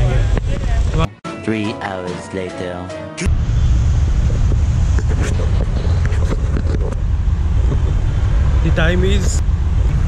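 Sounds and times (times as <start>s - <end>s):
wind buffeting microphone: 3.3s - 10.0s.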